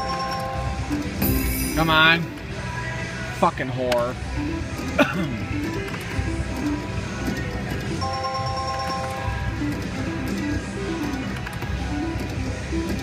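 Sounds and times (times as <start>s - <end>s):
slot machine reels spinning: 0.0s - 2.3s, 7.5s - 12.4s
background music: 0.0s - 13.0s.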